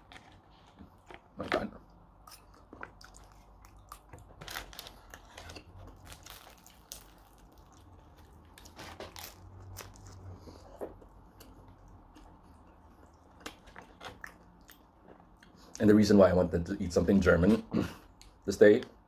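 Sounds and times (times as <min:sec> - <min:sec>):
low steady hum: 0:00.0 - 0:19.0
chewing and biting bread: 0:02.0 - 0:15.7.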